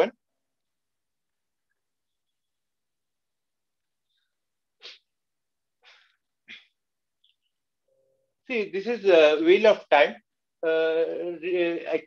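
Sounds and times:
person sniffing: 4.8 - 5.1.

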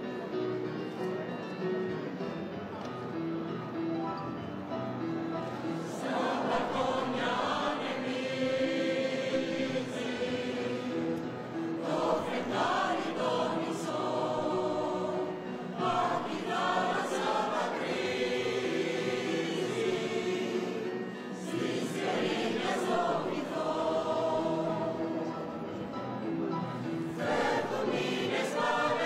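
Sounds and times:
choir singing held notes: 5.4 - 29.0.

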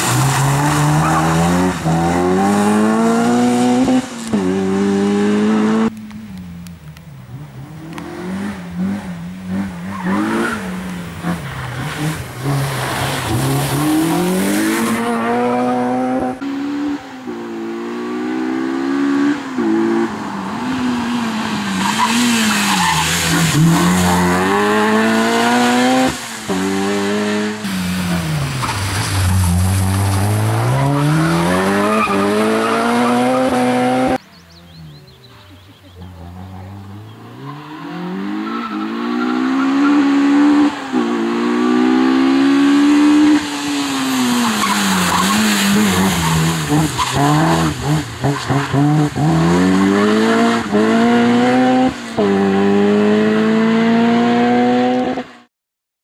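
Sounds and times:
car engine revving: 0.0 - 55.3.

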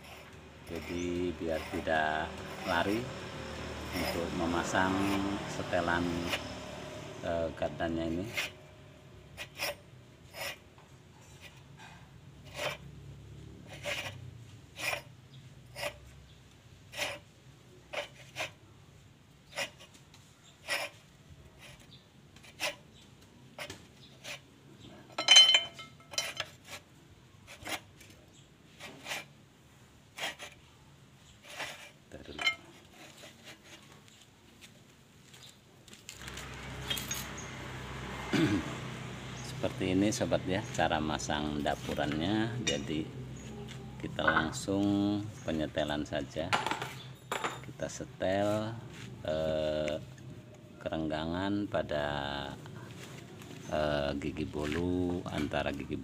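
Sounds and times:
ringing metal clink: 25.2 - 26.5.

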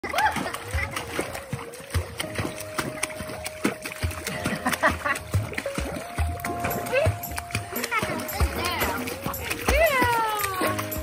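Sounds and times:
water splashing: 0.0 - 11.0.

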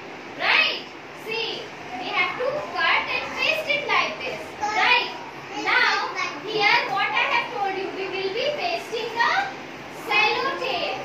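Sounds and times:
young children talking: 0.4 - 11.0.

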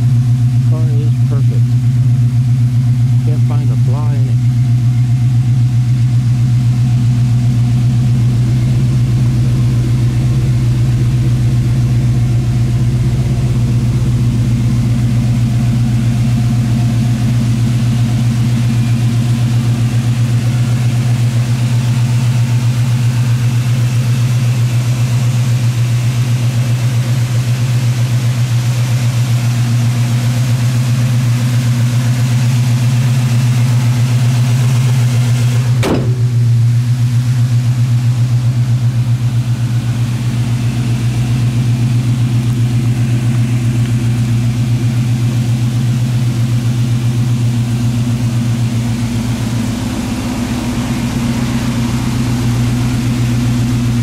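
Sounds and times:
car engine idling: 0.0 - 54.0.

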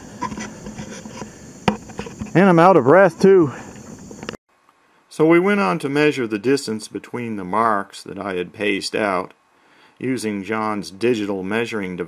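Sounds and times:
hands rubbing model airplane: 0.0 - 2.4.

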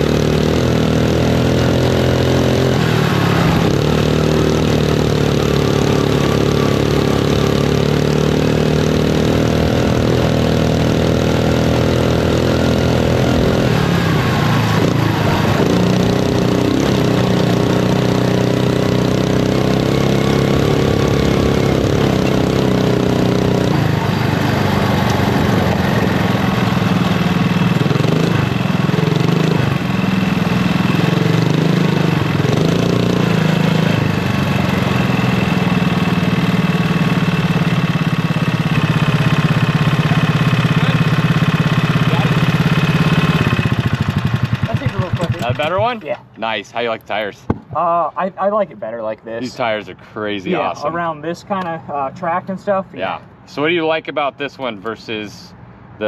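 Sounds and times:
kart engine revving: 0.0 - 46.0, 50.4 - 51.0.

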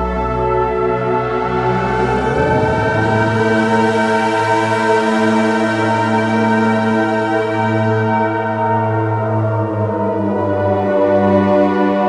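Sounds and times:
synthesizer chord over low drone: 0.3 - 6.8.

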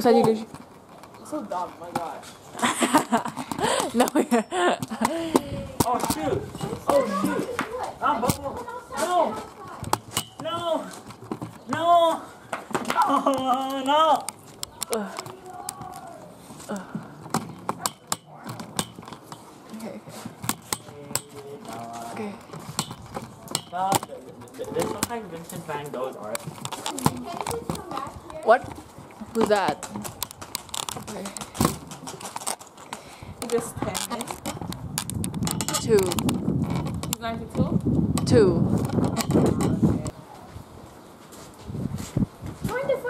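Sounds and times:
young people talking: 0.0 - 18.7, 19.6 - 30.2, 33.2 - 34.4, 35.4 - 36.4, 37.0 - 40.6, 42.6 - 43.0
children's voices: 6.4 - 9.9, 14.6 - 16.9, 26.8 - 28.9, 42.6 - 43.0
sharp clicks and knocks: 29.3 - 40.2.

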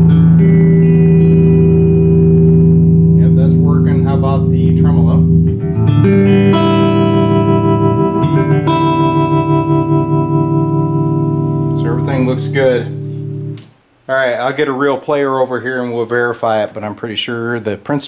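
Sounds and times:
electric guitar chords with tremolo: 0.0 - 13.7.

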